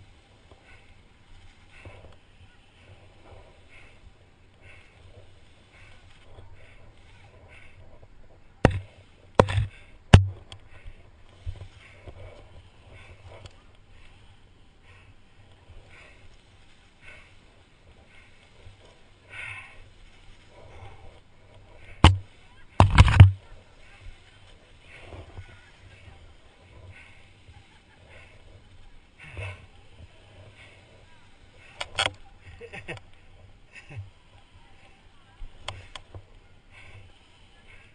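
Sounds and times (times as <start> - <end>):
gear knocking against helmet camera: 8.6 - 10.5, 22.0 - 23.4.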